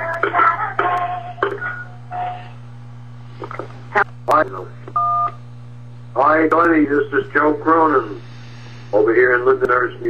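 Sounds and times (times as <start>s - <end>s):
low line hum: 0.0s - 10.0s.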